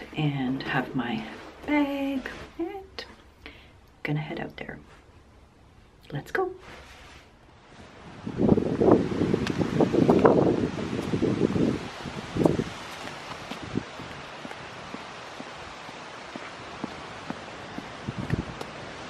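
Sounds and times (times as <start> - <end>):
outdoor hiss: 6.6 - 19.0
wind buffeting microphone: 7.7 - 19.0
footsteps on sidewalk: 9.2 - 19.0.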